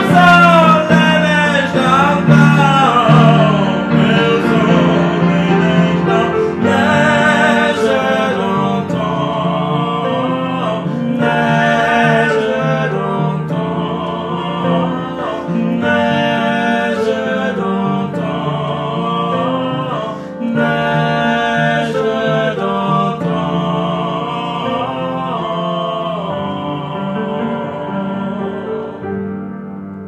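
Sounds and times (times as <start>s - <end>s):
person singing: 0.0s - 29.4s
piano chords: 0.0s - 30.0s.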